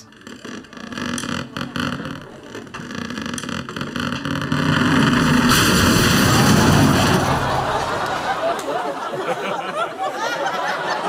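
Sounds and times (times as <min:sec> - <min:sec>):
ceiling cracking and creaking: 0:00.0 - 0:09.2
collapse rumble: 0:04.7 - 0:08.7
falling debris hiss: 0:05.0 - 0:08.6.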